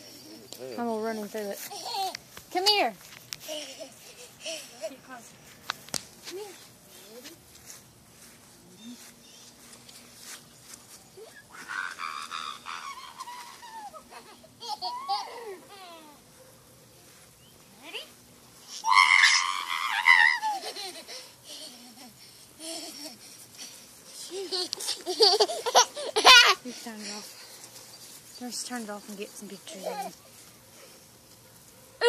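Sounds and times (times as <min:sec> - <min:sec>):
toddler squealing and babbling: 0:11.2 - 0:16.2, 0:18.7 - 0:20.8, 0:25.2 - 0:26.6.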